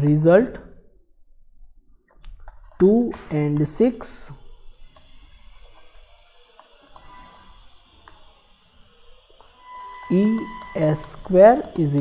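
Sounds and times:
man speaking: 0:00.0 - 0:00.7, 0:02.8 - 0:04.4, 0:10.1 - 0:12.0.

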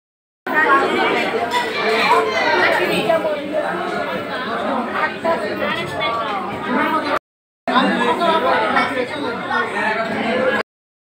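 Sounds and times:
people chattering: 0:00.5 - 0:10.6.

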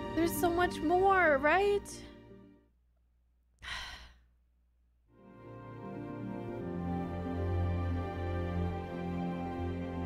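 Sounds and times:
music: 0:00.0 - 0:02.7, 0:05.1 - 0:10.0
person sighing: 0:03.6 - 0:04.4.

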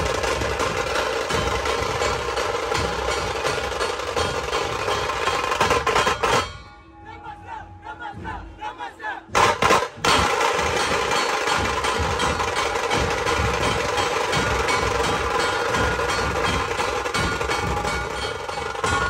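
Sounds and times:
fast drum roll: 0:00.0 - 0:06.4, 0:09.4 - 0:19.0
deep drum beats: 0:00.0 - 0:06.7, 0:09.3 - 0:19.0.

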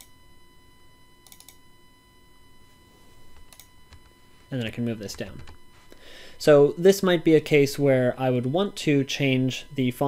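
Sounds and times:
computer mouse clicking: 0:01.2 - 0:01.6, 0:03.4 - 0:04.0.

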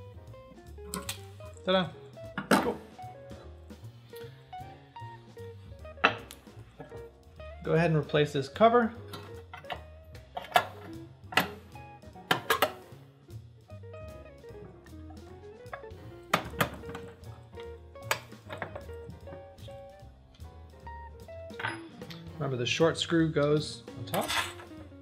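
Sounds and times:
soft guitar music: 0:00.0 - 0:25.0
metal clicks and knocks: 0:12.2 - 0:12.8, 0:15.7 - 0:19.4.

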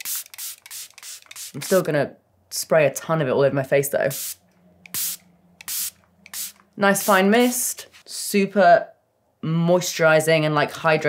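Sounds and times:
spray bottle hissing: 0:00.0 - 0:01.9, 0:04.1 - 0:07.3.

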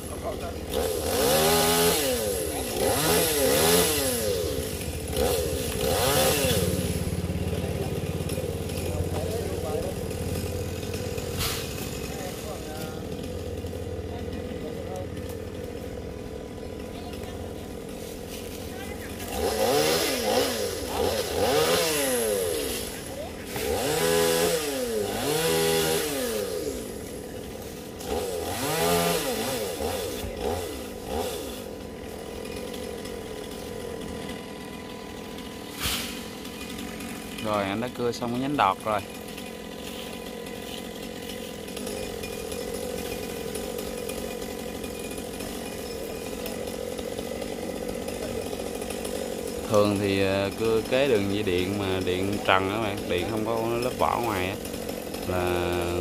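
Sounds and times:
chainsaw idling: 0:00.0 - 0:56.0
chainsaw revving in bursts: 0:00.0 - 0:56.0.

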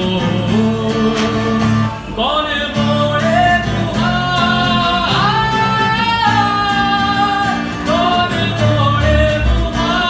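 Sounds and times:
acoustic guitar chords: 0:00.0 - 0:10.0
man singing into microphone: 0:00.0 - 0:10.0.

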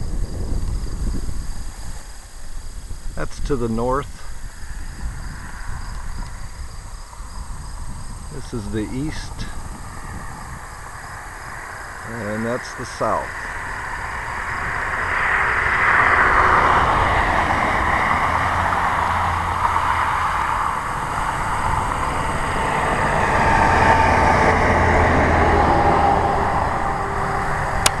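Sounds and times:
steady low hum: 0:00.0 - 0:28.0
cars passing close by: 0:00.2 - 0:28.0.

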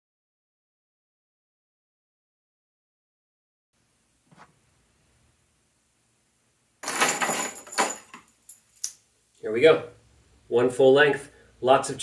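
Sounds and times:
chain links jangling: 0:06.8 - 0:08.9
metal chain clinking: 0:06.8 - 0:08.9.

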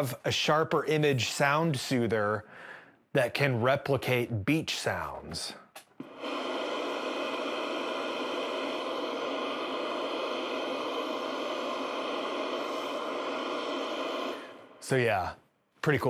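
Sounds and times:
synthesized water hiss: 0:06.0 - 0:15.3.

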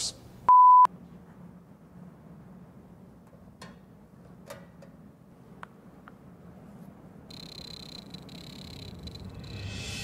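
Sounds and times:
high-pitched electronic tone: 0:07.3 - 0:10.0.

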